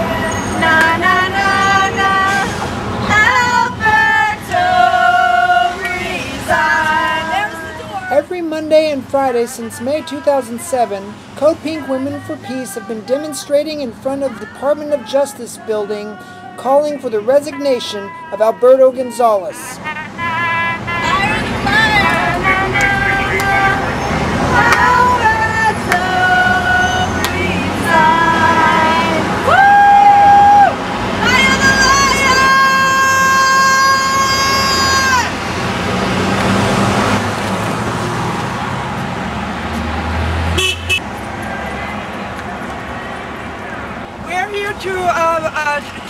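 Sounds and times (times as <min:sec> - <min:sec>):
car horns honking: 0:00.0 - 0:29.4, 0:40.4 - 0:42.3
road noise rumble: 0:00.0 - 0:46.0
street traffic noise: 0:00.0 - 0:46.0
car horn long blast: 0:19.8 - 0:23.8, 0:40.5 - 0:41.1.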